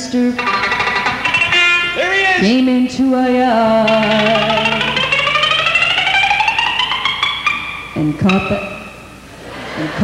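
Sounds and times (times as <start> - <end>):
guitar picking fast run: 0.4 - 9.4.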